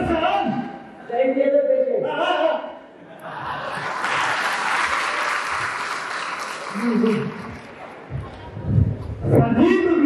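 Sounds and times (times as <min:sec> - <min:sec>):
audience applauding: 0:03.7 - 0:08.0.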